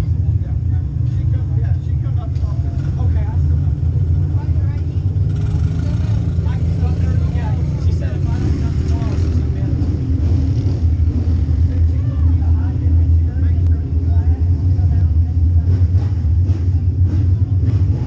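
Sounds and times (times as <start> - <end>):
faint voices talking: 0.0 - 18.0
race car engine idling: 0.0 - 18.0.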